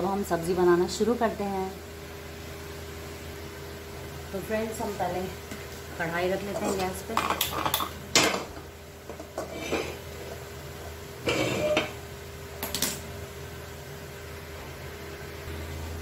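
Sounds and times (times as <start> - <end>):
pan scraping: 9.2 - 10.4, 11.2 - 12.0.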